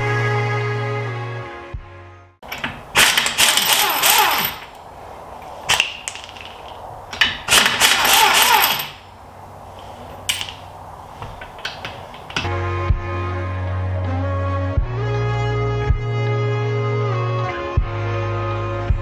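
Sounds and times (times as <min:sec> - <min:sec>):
impact wrench spinning: 0:02.5 - 0:04.8, 0:05.7 - 0:09.1.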